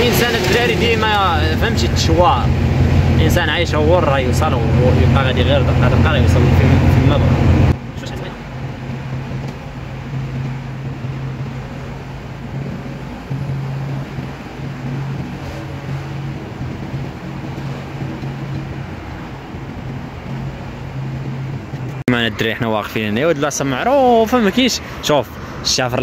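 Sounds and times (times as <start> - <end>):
truck diesel engine humming: 0.0 - 25.8
road and wind noise: 0.0 - 26.0.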